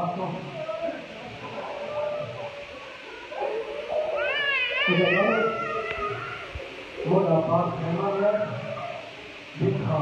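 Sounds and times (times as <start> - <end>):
murmur of voices: 0.0 - 10.0
high-pitched wailing cry: 3.9 - 6.5.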